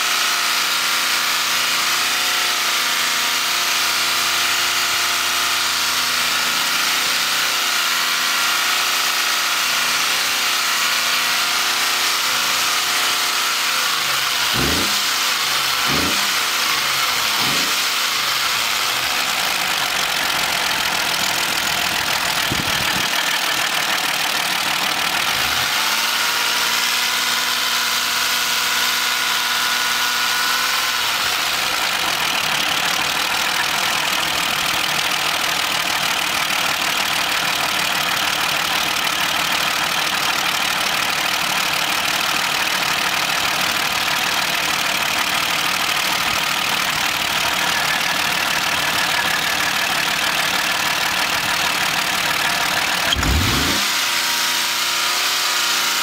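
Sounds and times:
car engine revving: 11.3s - 23.5s, 52.3s - 56.0s.

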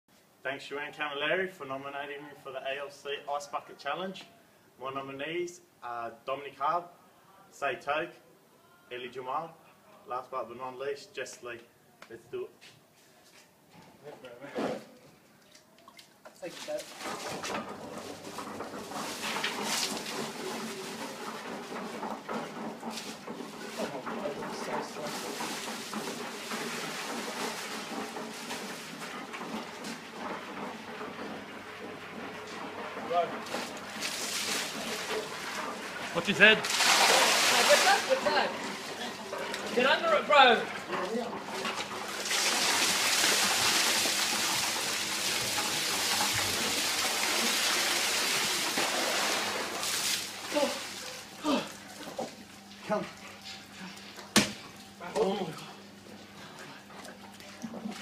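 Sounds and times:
water pouring and splashing: 15.3s - 58.0s
ice clattering in metal drum: 16.6s - 51.7s.

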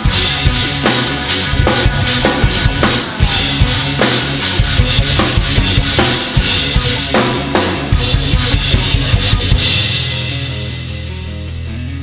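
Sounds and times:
band backing track: 0.0s - 12.0s.

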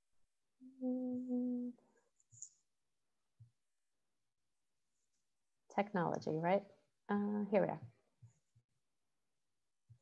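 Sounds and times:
woman humming: 0.6s - 1.8s.

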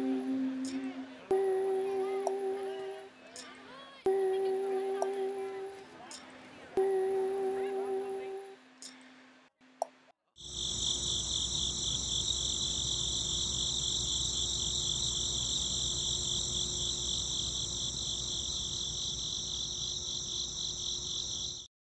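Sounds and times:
crickets chirping: 0.0s - 9.0s, 10.4s - 21.7s
faint low hum: 0.0s - 9.5s.

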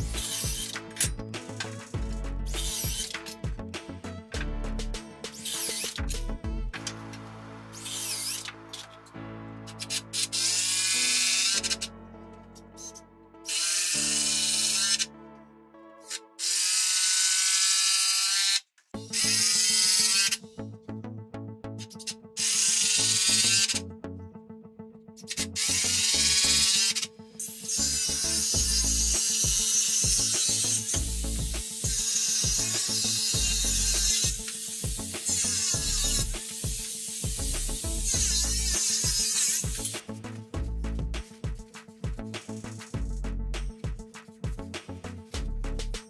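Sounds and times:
background music: 0.0s - 17.8s, 18.9s - 46.0s
cordless drill running: 16.4s - 20.4s, 27.6s - 39.8s.

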